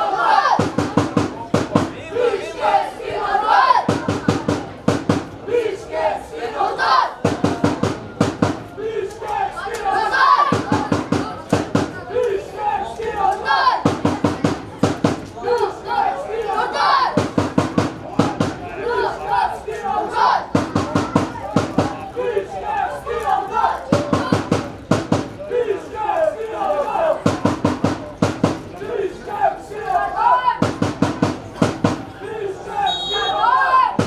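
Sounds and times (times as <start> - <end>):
fans calling and chanting: 0.0 - 34.0
drum beaten in quick bursts: 0.5 - 2.0, 3.7 - 5.4, 7.2 - 8.7, 10.4 - 12.0, 13.8 - 15.3, 17.0 - 18.7, 20.4 - 22.1, 23.9 - 25.4, 27.2 - 28.8, 30.6 - 32.2.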